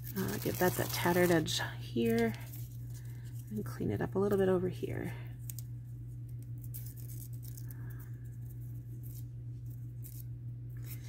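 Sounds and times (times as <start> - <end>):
paper and tape rustling: 0.0 - 3.7, 4.3 - 11.0
steady low hum: 0.0 - 11.0.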